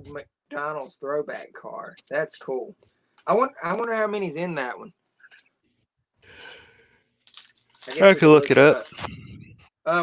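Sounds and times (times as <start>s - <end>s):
foil wrapper crinkling: 7.2s - 9.0s.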